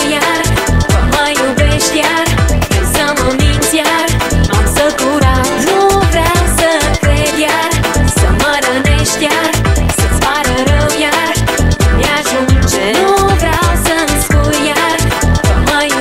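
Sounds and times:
dance-pop music: 0:00.0 - 0:16.0.

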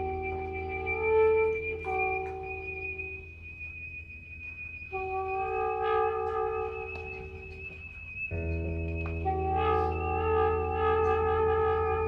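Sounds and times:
high steady whistle-like tone: 0:00.0 - 0:12.0
low amplifier hum: 0:00.0 - 0:12.0
lower sustained notes: 0:00.0 - 0:12.0.

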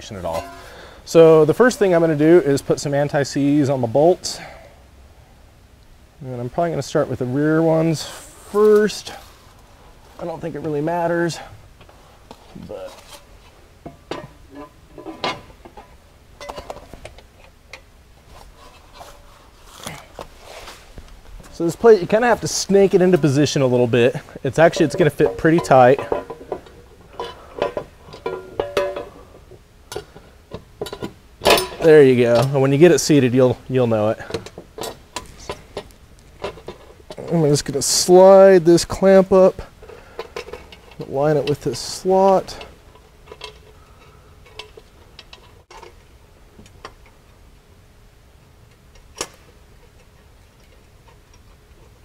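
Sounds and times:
metal skid plate clinking and scraping: 0:00.2 - 0:00.8.

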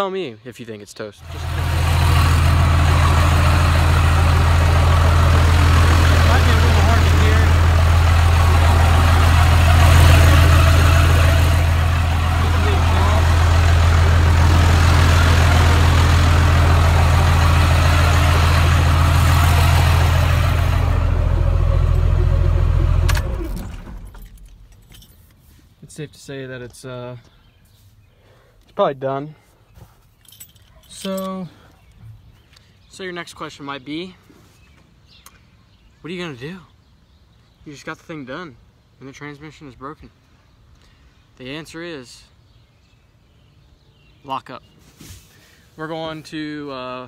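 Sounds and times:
truck engine idling: 0:01.2 - 0:24.8.

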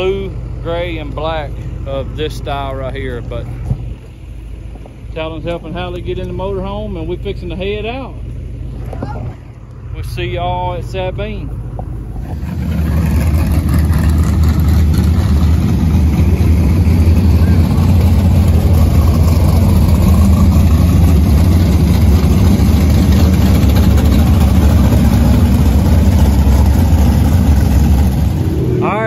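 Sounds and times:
race car engines roaring: 0:00.0 - 0:29.0.

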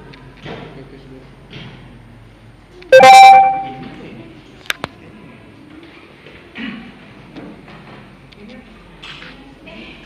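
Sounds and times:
loud chord of steady tones: 0:03.0 - 0:03.8.

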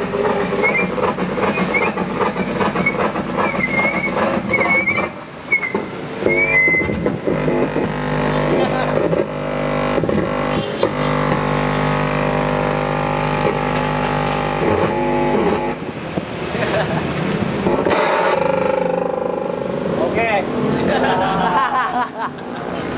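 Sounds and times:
feedback tones: 0:00.0 - 0:16.1, 0:17.6 - 0:20.6
electronic drones: 0:06.2 - 0:16.0, 0:17.6 - 0:20.2.

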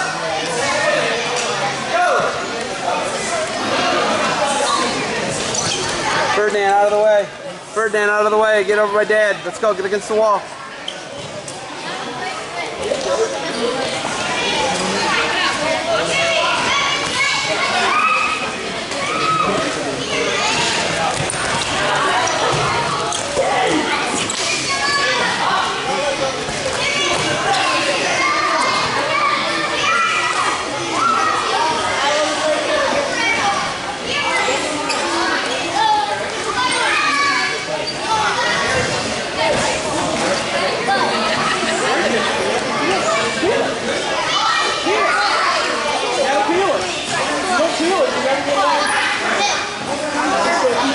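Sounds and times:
children calling and chattering: 0:00.0 - 0:50.9.

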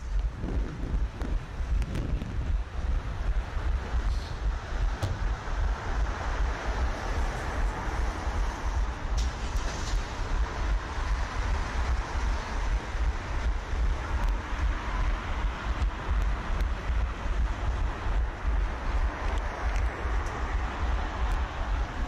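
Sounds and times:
road traffic: 0:00.0 - 0:22.0
wind rushing over microphone: 0:00.0 - 0:22.0.

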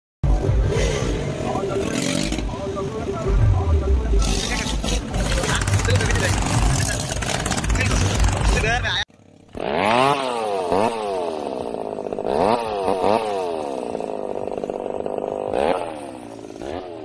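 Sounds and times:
crowd voices: 0:00.2 - 0:09.0
motorcycle engines revving: 0:00.2 - 0:17.0
music over loudspeakers: 0:00.3 - 0:06.7.

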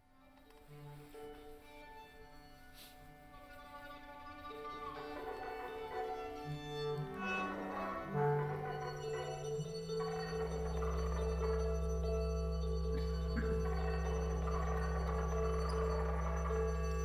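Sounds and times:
chamber ensemble held notes: 0:00.8 - 0:17.0.

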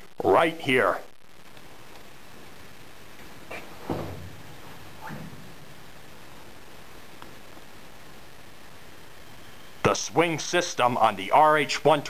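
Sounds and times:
steady hiss: 0:00.0 - 0:12.0
footsteps on steel walkway: 0:03.5 - 0:05.6.

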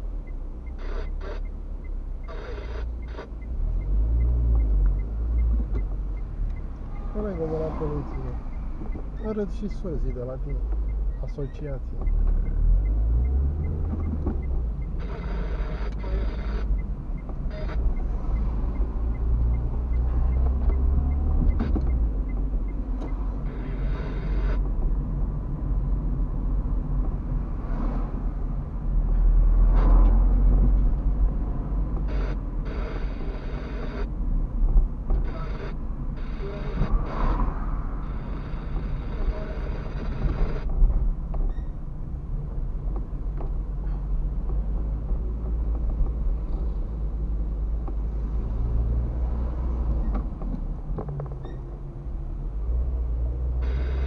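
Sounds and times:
engine and road rumble: 0:00.0 - 0:54.0.

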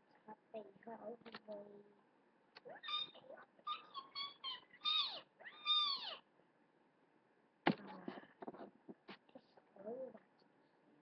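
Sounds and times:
cat meowing high-pitched: 0:04.2 - 0:06.2.

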